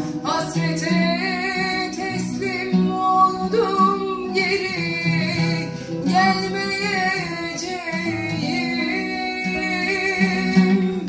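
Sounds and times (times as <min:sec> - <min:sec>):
woman singing slow song: 0:00.0 - 0:11.0.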